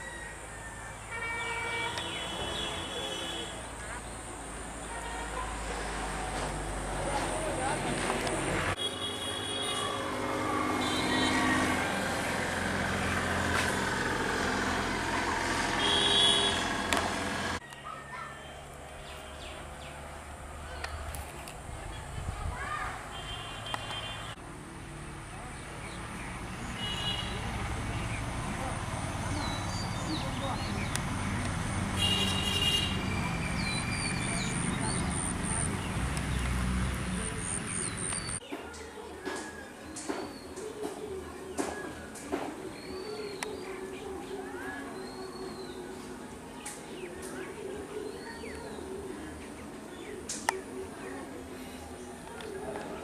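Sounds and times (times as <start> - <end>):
street traffic noise: 0.0 - 53.0.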